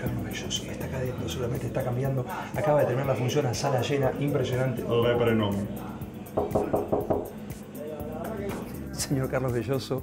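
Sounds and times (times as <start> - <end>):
background music: 0.0 - 10.0
knuckles knocking on door: 6.4 - 7.4.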